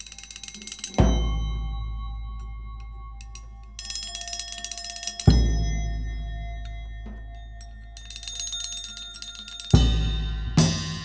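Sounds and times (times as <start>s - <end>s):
metallic jingling rattle: 0.0s - 11.0s
struck metal ringing: 0.0s - 11.0s.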